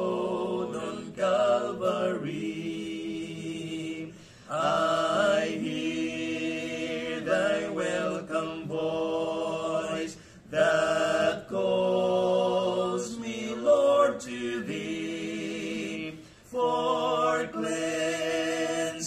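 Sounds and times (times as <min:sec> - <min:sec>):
men singing a hymn in harmony: 0:00.0 - 0:19.0.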